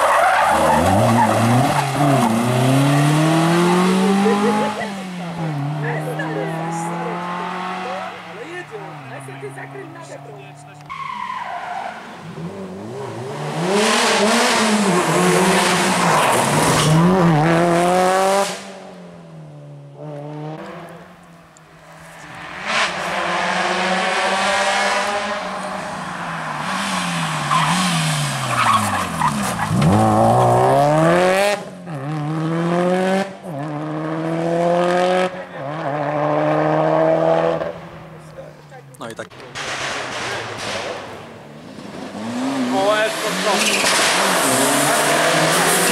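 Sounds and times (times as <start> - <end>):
rally car engine revving: 0.0 - 38.3, 39.0 - 45.9.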